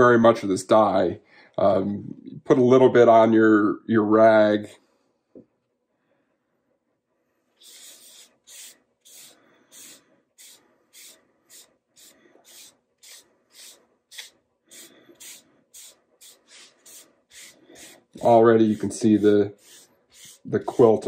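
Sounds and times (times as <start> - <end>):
cloth wiping strokes on wood: 7.6 - 21.0.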